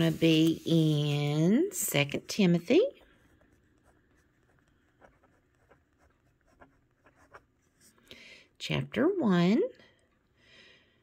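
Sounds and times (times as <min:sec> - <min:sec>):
pen scratching on paper: 0:02.8 - 0:08.0.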